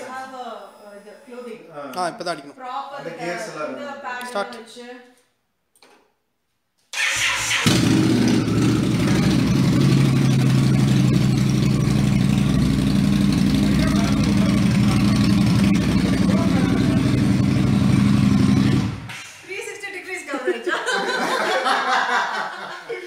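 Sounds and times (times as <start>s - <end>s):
motorcycle engine idling: 7.7s - 19.1s.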